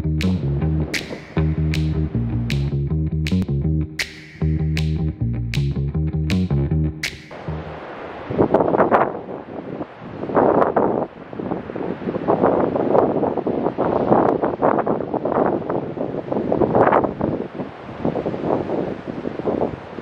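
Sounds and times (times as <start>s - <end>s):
ocean surf breaking: 7.0s - 12.4s
wind buffeting microphone: 7.3s - 20.0s.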